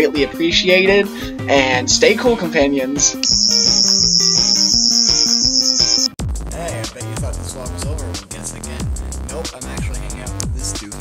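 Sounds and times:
toy electronic whine with warble: 3.2s - 6.1s
background music with beat: 3.2s - 11.0s.

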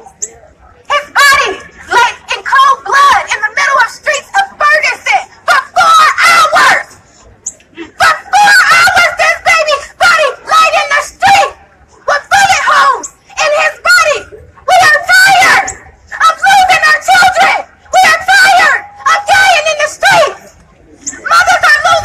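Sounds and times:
woman shouting through megaphone: 0.8s - 6.9s, 7.9s - 22.0s.

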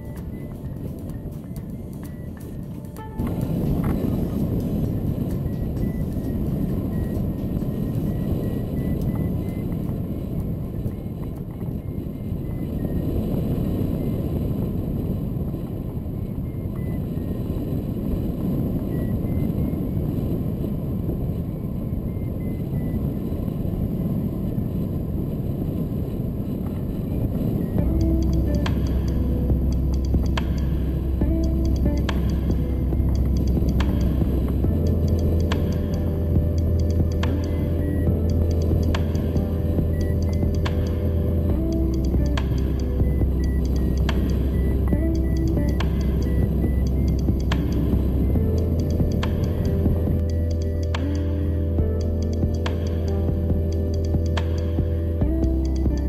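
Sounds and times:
steady low musical tones: 0.0s - 13.4s, 27.4s - 56.0s
variometer beeping: 0.0s - 14.6s, 16.2s - 17.5s, 18.6s - 20.3s, 21.8s - 23.4s, 27.4s - 56.0s
wind rushing over camera: 0.0s - 56.0s.

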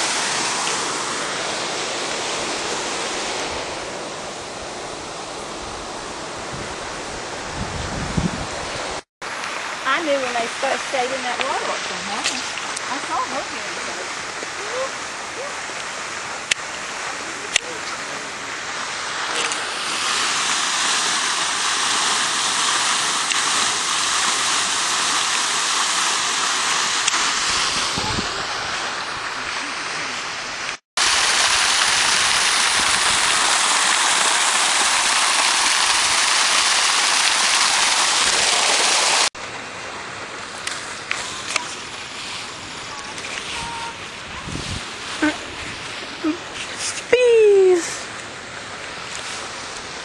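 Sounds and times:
fountain water splashing: 0.0s - 7.6s, 8.6s - 50.0s.

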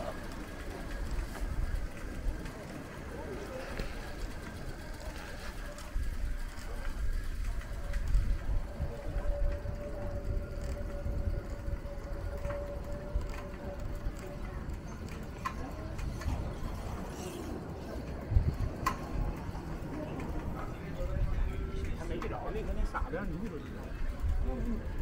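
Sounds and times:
low street rumble: 0.0s - 25.0s.

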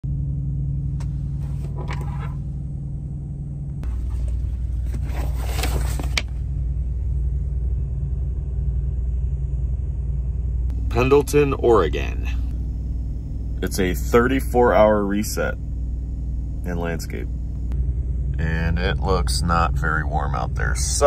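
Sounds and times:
diesel truck engine idling: 0.0s - 21.0s.

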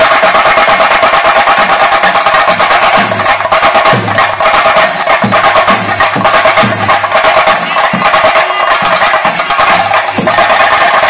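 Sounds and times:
deep drum beats: 0.0s - 11.0s
drum ensemble played loudly: 0.0s - 11.0s.

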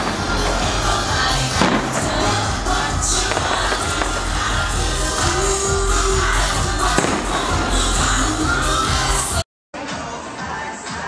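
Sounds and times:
firework bang: 0.0s - 5.4s, 6.8s - 8.2s
music with low beat: 0.0s - 9.4s.

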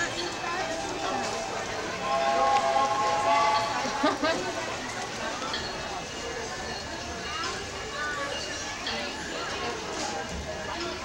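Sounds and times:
indistinct crowd voices: 0.0s - 11.0s
steady held note: 1.9s - 4.2s.

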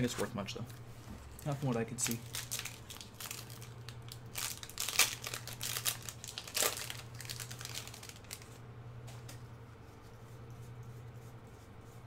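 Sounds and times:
wrapper crinkling and tearing: 1.4s - 8.6s.

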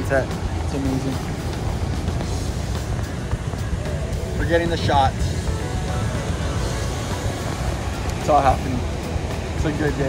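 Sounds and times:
ocean surf breaking: 0.0s - 10.0s
wind buffeting microphone: 0.0s - 10.0s.

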